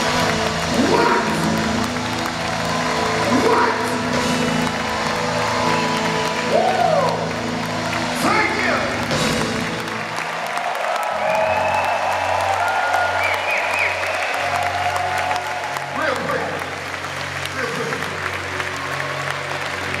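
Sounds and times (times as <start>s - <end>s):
crowd applauding: 0.0s - 20.0s.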